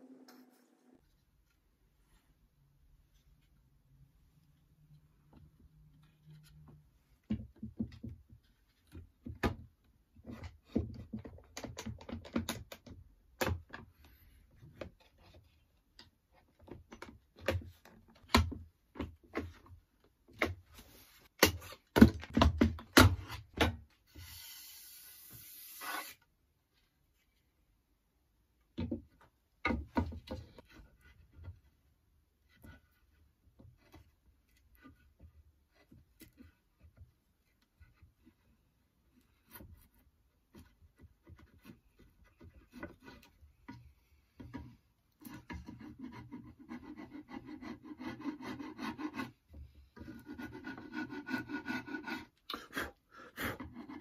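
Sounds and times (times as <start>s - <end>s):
short steady hiss: 24.2s - 26.2s.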